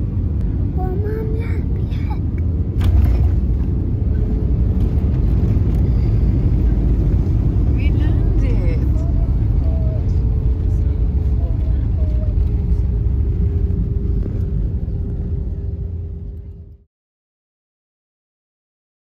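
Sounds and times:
constant engine whine: 0:00.0 - 0:16.9
jet airliner cabin rumble: 0:00.0 - 0:16.9.

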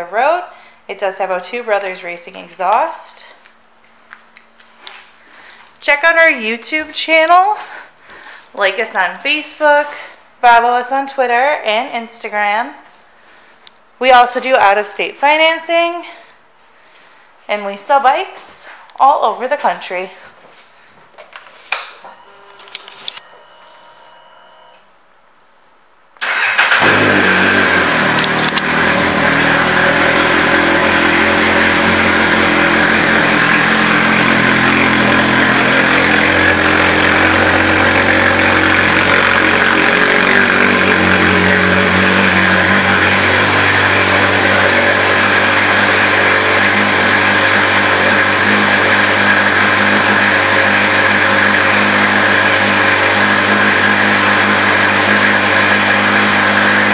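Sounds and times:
motorcycle engine starting and idling: 0:26.2 - 0:56.9.

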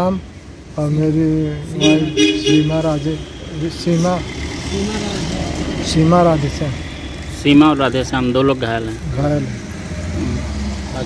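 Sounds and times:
man speaking: 0:00.0 - 0:09.6.

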